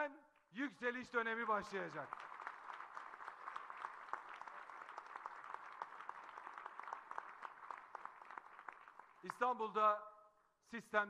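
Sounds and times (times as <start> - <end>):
audience clapping: 1.2 - 9.8.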